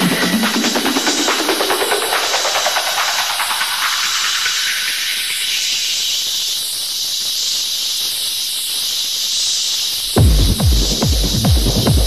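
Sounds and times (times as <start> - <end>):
white-noise riser in techno track: 0.0 - 12.0.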